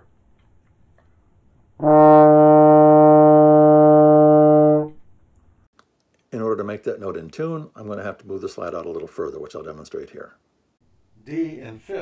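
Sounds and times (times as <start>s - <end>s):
trombone held note: 1.8s - 5.0s.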